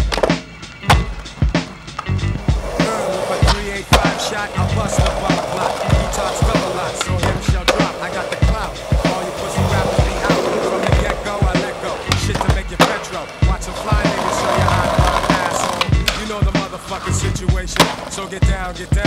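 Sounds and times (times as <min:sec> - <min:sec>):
hip-hop track with drum beat: 0:00.0 - 0:19.0
skateboard clacking: 0:00.0 - 0:19.0
skateboard wheels rolling on pavement: 0:00.0 - 0:19.0.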